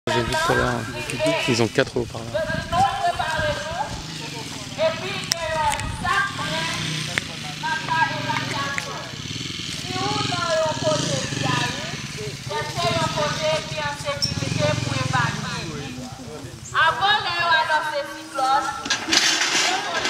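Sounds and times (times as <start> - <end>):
people talking: 0.1 - 9.2, 9.8 - 20.0.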